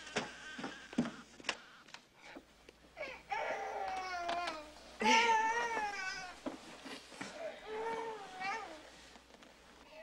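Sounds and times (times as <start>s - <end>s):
newborn baby crying: 3.0s - 6.4s, 7.4s - 8.9s.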